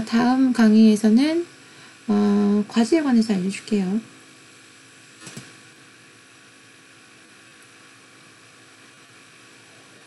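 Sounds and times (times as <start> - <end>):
light hum: 0.0 - 10.0.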